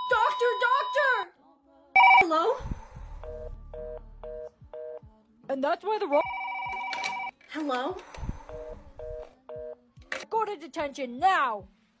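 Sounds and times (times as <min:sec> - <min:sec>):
telephone busy tone beeps: 0:02.0 - 0:02.2, 0:06.2 - 0:07.3, 0:08.5 - 0:09.8.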